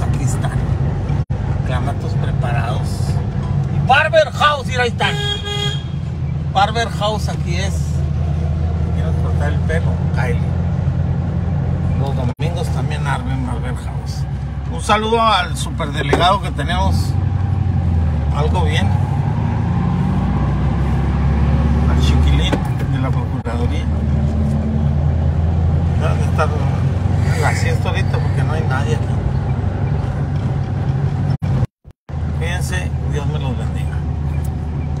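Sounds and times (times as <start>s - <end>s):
car engine and road noise: 0.0s - 35.0s.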